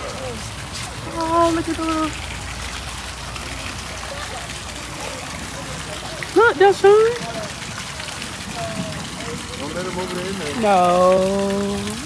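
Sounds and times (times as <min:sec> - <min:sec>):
fountain splashing into pond: 0:00.0 - 0:12.0.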